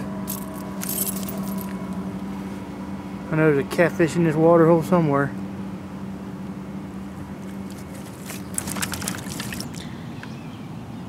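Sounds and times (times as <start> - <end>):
steady low hum: 0.0 - 11.0
metallic jingle: 0.3 - 1.7.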